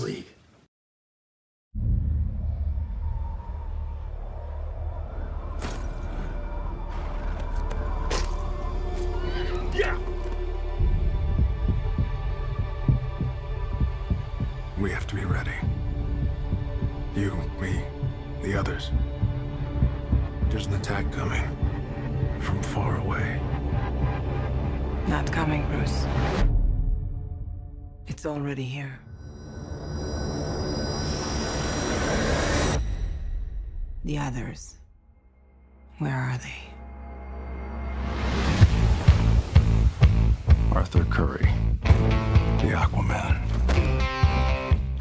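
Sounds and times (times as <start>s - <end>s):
man speaking: 0.0s - 0.4s, 40.7s - 41.8s, 42.6s - 43.5s
low rumble: 1.8s - 8.8s
low hum: 1.8s - 9.6s
deep pulsing score: 1.8s - 43.0s.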